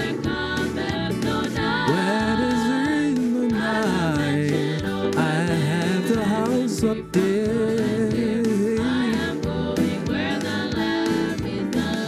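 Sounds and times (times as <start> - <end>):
band accompaniment: 0.0 - 12.0
person singing a hymn: 0.0 - 12.0.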